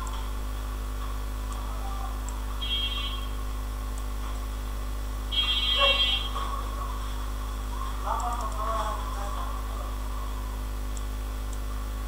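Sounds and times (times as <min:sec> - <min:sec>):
low electrical hum: 0:00.0 - 0:12.0
high buzzing electronic tone: 0:02.6 - 0:03.7, 0:05.2 - 0:06.4.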